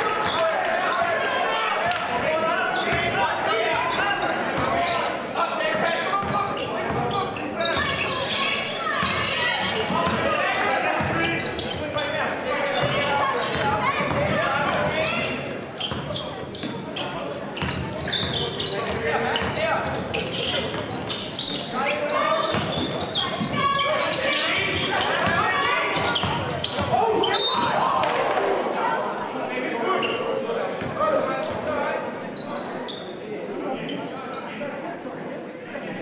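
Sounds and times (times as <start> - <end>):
people talking and calling out: 0.0 - 36.0
sneakers squeaking: 0.1 - 1.1, 1.9 - 28.2, 29.9 - 31.7, 32.3 - 33.2.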